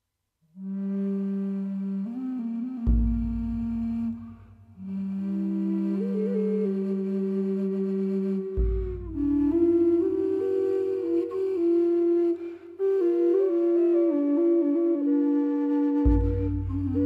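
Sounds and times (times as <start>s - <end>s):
low flute long notes: 0.5s - 17.0s.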